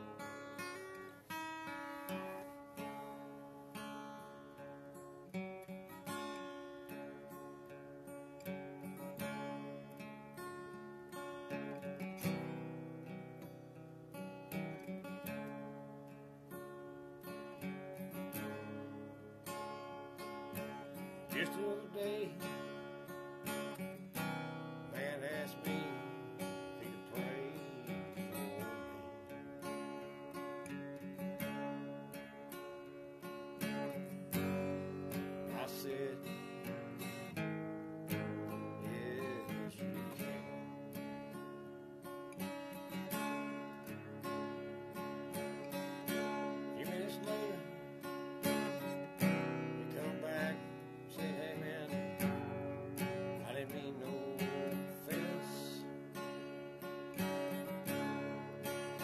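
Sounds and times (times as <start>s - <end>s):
acoustic guitar strummed and picked: 0.0s - 59.0s.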